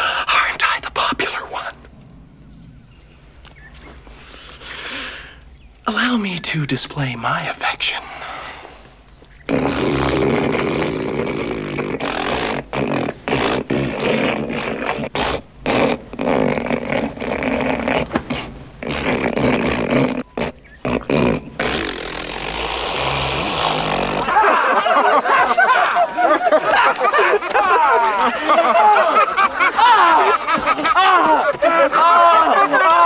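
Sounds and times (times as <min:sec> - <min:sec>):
man hawking up phlegm: 0:09.4 - 0:24.4
man spitting: 0:09.4 - 0:24.4.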